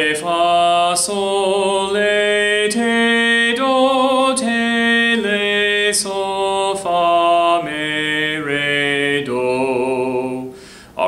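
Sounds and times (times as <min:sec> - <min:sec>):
man singing scale unaccompanied: 0:00.0 - 0:11.0.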